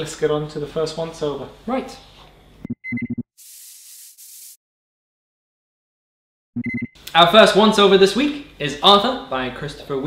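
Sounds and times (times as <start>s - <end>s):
high beep: 2.8s - 3.2s, 6.6s - 6.9s
hissing spray-can bursts: 3.4s - 4.6s.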